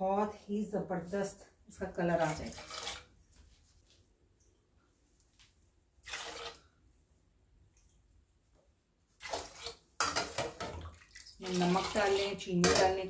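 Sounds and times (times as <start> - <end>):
tea splashing in a saucepan: 2.1 - 3.2, 6.0 - 6.8, 9.2 - 13.0.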